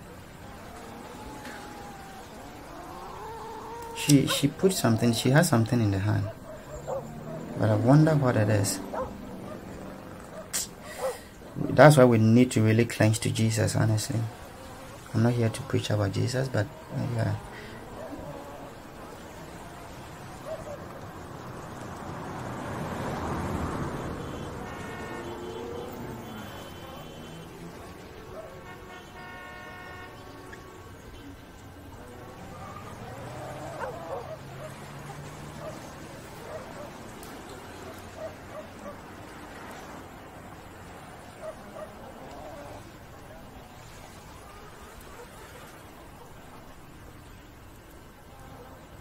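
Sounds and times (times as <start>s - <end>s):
vehicle passing: 0.0s - 46.0s
cat yowling: 0.6s - 5.2s, 32.6s - 35.9s
car horn: 23.9s - 27.8s, 28.5s - 31.4s.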